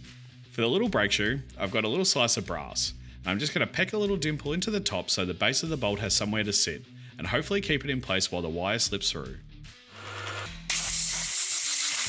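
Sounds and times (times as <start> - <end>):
compressed air blow gun hissing: 10.7 - 12.0.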